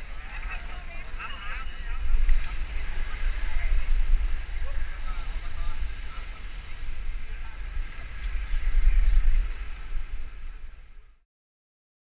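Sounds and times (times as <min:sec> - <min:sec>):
wind buffeting microphone: 0:00.0 - 0:11.2.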